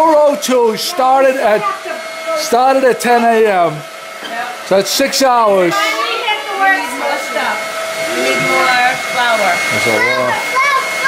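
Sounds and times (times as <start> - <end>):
whirring hum: 0.0 - 11.0.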